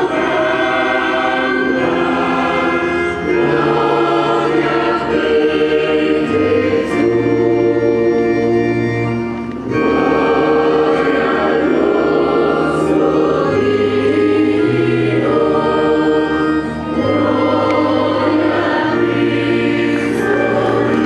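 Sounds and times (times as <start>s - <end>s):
choir singing sustained chords: 0.0s - 21.0s
organ playing: 0.0s - 21.0s.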